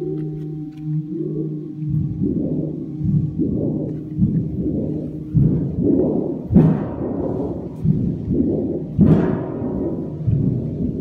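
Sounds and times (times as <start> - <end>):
booming metal feedback tones: 0.0 - 11.0.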